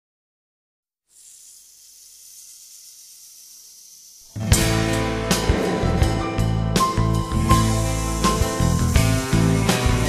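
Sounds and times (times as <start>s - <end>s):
low hum: 1.5s - 8.1s.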